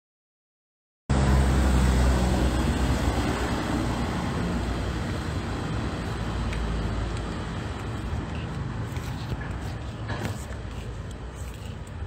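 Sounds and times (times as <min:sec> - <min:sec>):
vehicle engine rumbling: 0:01.1 - 0:12.0.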